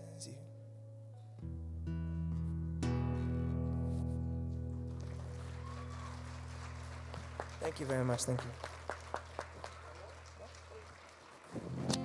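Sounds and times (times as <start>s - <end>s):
acoustic guitar chord ringing: 0.5s - 5.0s
audience clapping: 4.7s - 12.0s.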